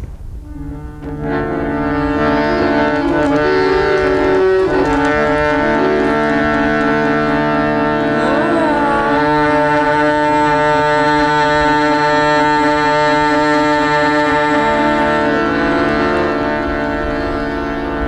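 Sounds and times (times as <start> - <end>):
harmonium drone: 0.2 - 18.0
woman singing held note: 2.2 - 16.4.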